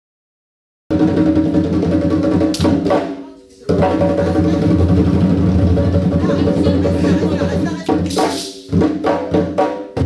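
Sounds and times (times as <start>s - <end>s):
hand drums playing dance rhythm: 0.9s - 10.0s.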